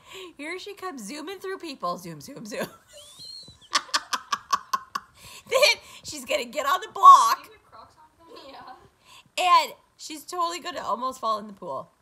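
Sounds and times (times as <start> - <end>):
person laughing: 2.8 - 5.8.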